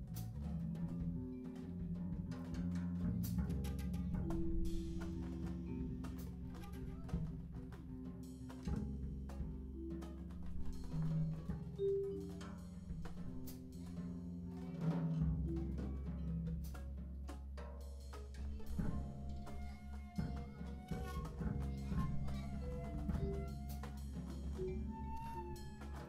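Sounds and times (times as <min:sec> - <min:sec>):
free jazz group improvising: 0:00.0 - 0:26.0.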